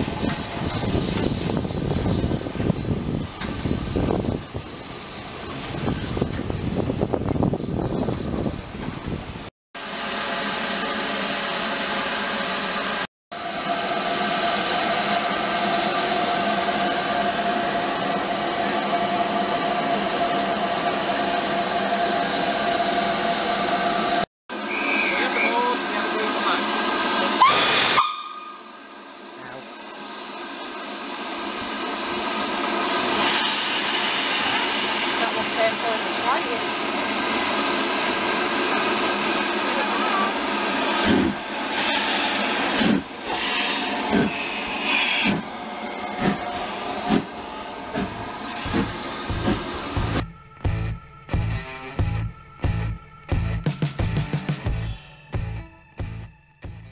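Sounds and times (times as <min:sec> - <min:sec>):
steam locomotive hissing: 0:00.0 - 0:09.2, 0:09.8 - 0:50.2.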